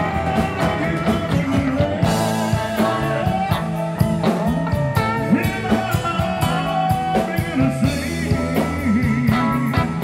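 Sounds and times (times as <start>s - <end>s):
live rock band playing: 0.0s - 10.0s
male lead vocal: 0.0s - 10.0s.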